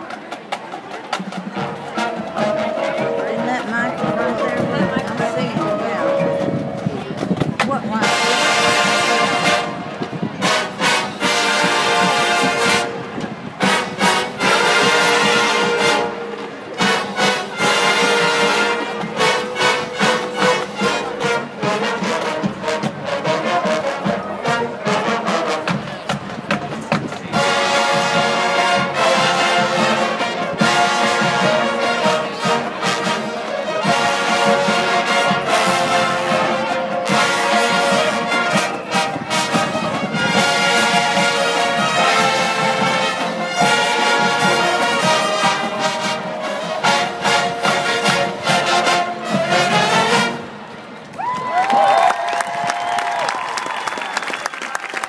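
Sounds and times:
marching band playing: 0:00.0 - 0:53.3
drumline: 0:00.0 - 0:55.0.

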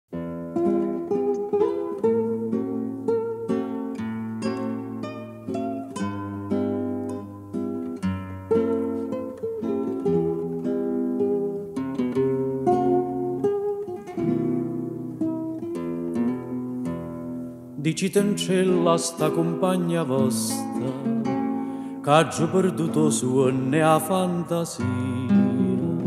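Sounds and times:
plucked acoustic guitar melody: 0:00.1 - 0:26.0.

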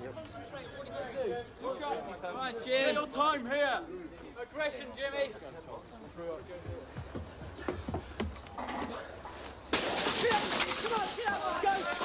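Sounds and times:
loud even hiss: 0:09.7 - 0:12.0.

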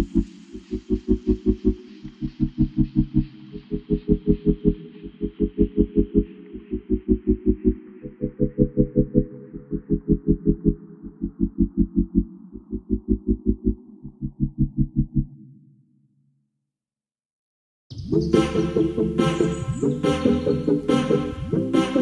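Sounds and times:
low synth chord: 0:00.0 - 0:15.4
deep bass pulse: 0:00.0 - 0:15.7.

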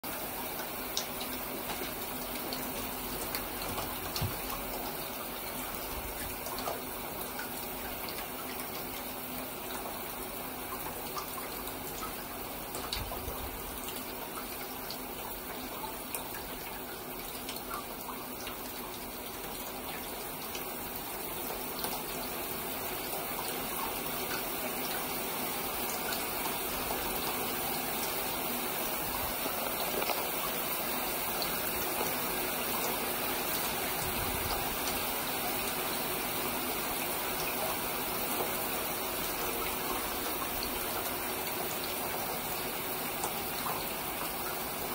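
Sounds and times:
water running from tap into bath: 0:00.0 - 0:44.9.

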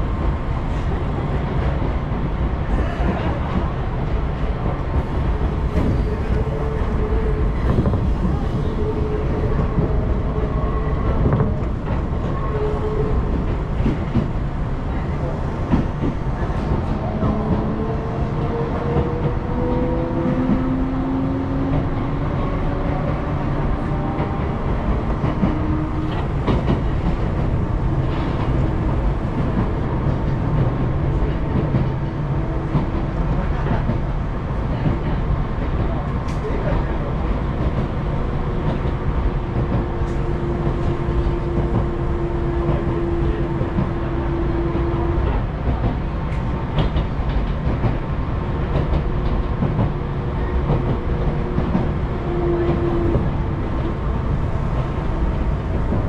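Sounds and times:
train rumbling from inside: 0:00.0 - 0:56.0
rail clicks: 0:00.1 - 0:56.0.

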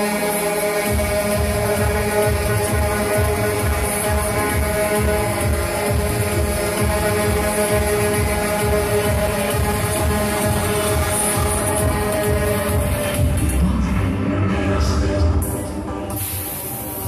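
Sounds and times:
loud electronic music: 0:00.0 - 0:17.0.

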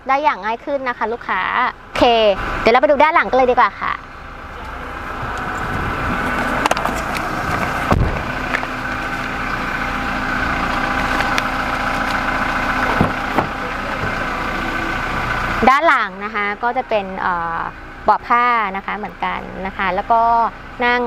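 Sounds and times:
pickup engine running: 0:00.0 - 0:21.0
low knocks and thumps: 0:05.2 - 0:09.4, 0:12.8 - 0:14.3.

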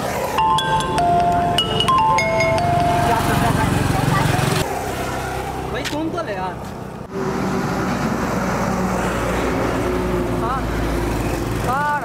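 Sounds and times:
road traffic noise: 0:00.0 - 0:12.0
man's voice: 0:02.8 - 0:04.0.

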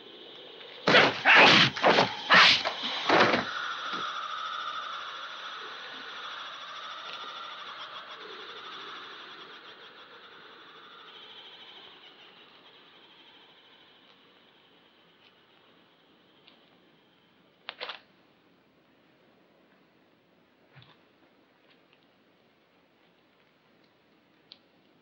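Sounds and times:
steady high-edged hiss: 0:00.0 - 0:25.0
fight impact sound effect: 0:00.9 - 0:03.4.

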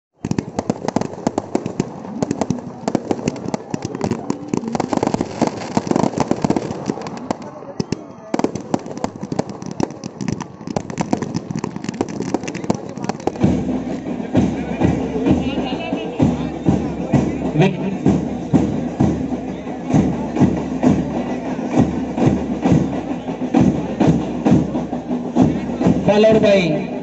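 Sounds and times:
fireworks crackling and popping: 0:00.2 - 0:15.6.

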